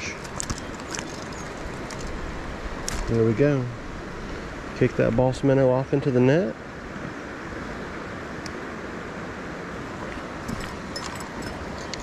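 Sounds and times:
creek water rushing: 0:00.0 - 0:12.0.

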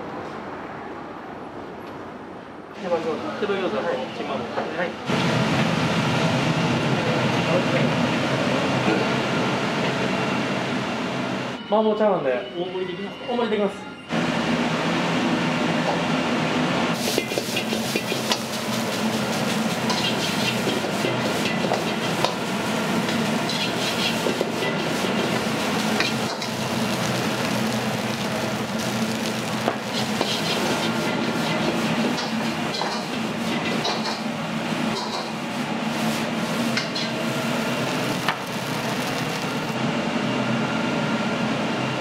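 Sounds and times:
gas burner rushing: 0:16.8 - 0:39.8
rice sizzling in wok: 0:16.9 - 0:33.9, 0:34.8 - 0:39.8
metal ladle scraping wok: 0:17.0 - 0:22.2, 0:23.0 - 0:27.1, 0:27.9 - 0:33.8.

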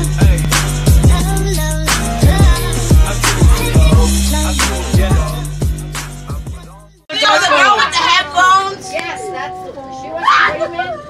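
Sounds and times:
children talking and calling out: 0:07.1 - 0:11.0
child crying out: 0:09.9 - 0:11.0.

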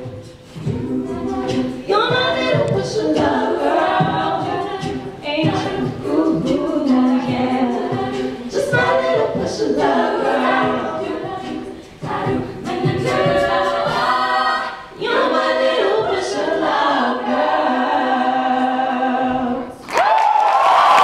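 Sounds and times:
female a cappella group singing: 0:00.0 - 0:19.8.

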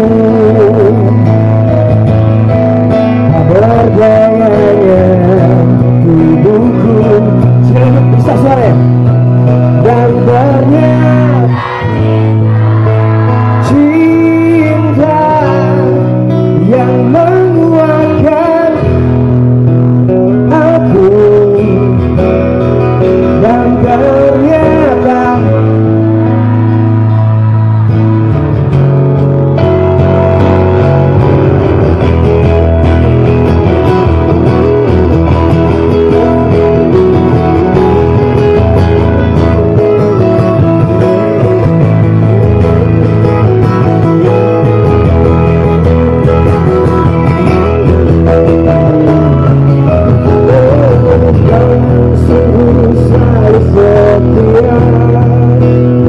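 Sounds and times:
person singing: 0:00.0 - 0:01.8, 0:03.1 - 0:19.3, 0:20.1 - 0:28.7, 0:33.2 - 0:56.0
live band music over pa: 0:00.0 - 0:56.0.

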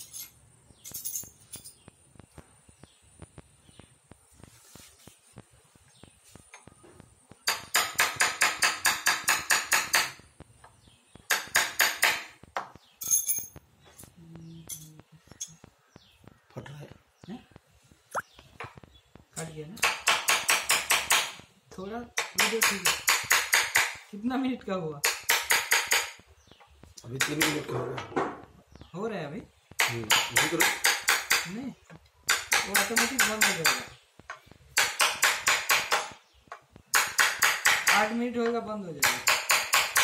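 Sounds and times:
light metallic clinks: 0:00.0 - 0:01.9, 0:12.9 - 0:15.6.

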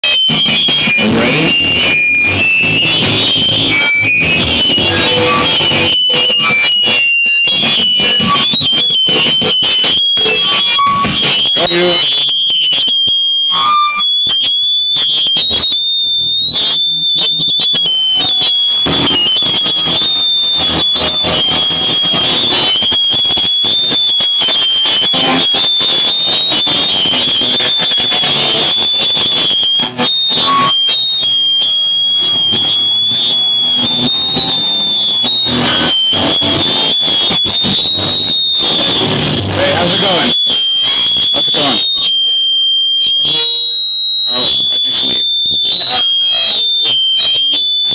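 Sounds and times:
live rock band playing: 0:00.0 - 0:42.7
high-pitched feedback squeal: 0:00.0 - 0:47.9.

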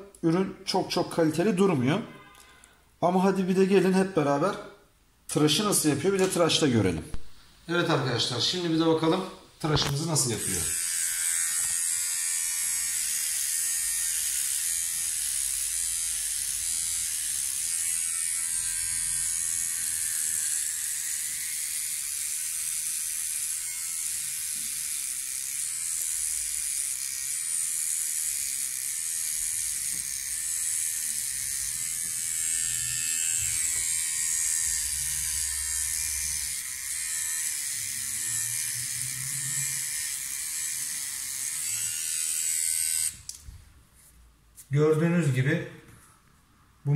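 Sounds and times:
beard trimmer whirring: 0:09.7 - 0:43.4.

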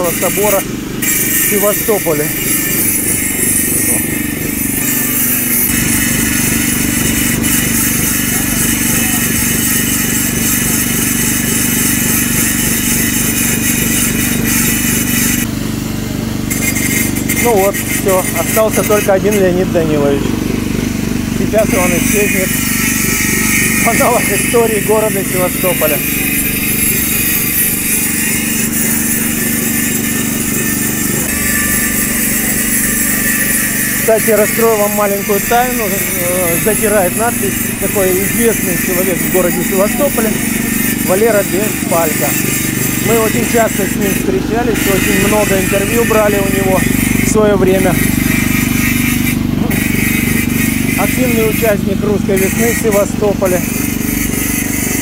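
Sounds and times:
angle grinder grinding stone: 0:00.0 - 0:55.0
petrol generator running: 0:00.0 - 0:55.0.

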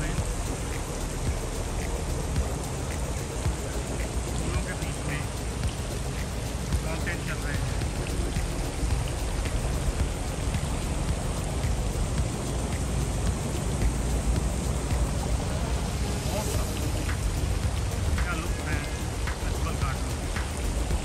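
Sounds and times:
fountain water splashing: 0:00.0 - 0:21.0.

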